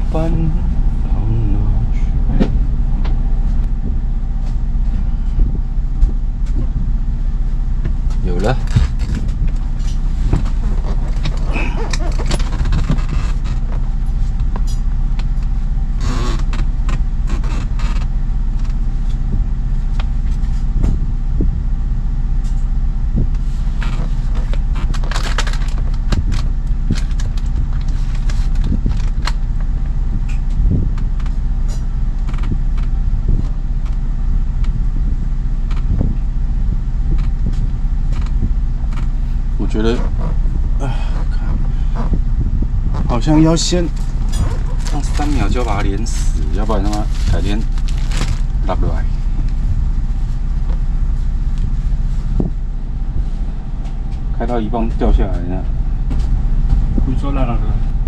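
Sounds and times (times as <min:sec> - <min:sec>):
boat engine idling: 0:00.0 - 0:58.0.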